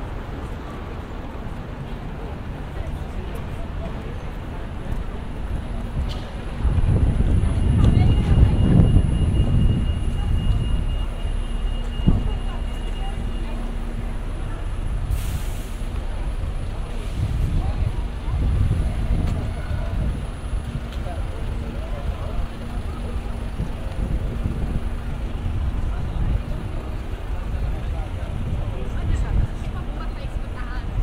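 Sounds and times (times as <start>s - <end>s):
passers-by talking: 0.0s - 31.0s
traffic engines rumbling: 0.0s - 31.0s
short hiss: 15.1s - 15.9s.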